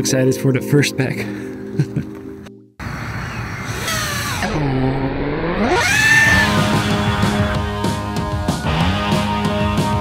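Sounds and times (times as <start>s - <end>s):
background music: 0.0s - 2.7s, 6.3s - 10.0s
drone motors spinning: 3.2s - 6.8s.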